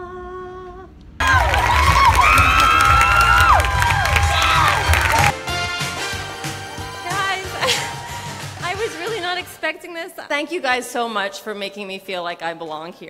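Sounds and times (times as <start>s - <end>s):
crowd cheering and whooping: 1.2s - 5.4s, 7.4s - 8.7s
music: 1.2s - 10.0s.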